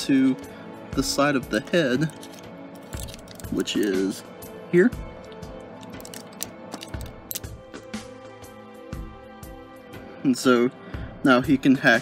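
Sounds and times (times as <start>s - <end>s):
background music: 0.0s - 12.0s
plastic toy parts clicking: 2.0s - 3.9s, 5.3s - 7.5s.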